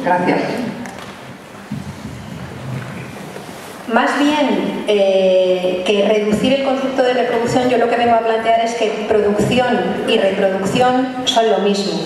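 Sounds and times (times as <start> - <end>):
low room rumble: 0.0 - 11.0
faint indistinct murmuring: 0.6 - 3.9
woman speaking: 3.9 - 12.0.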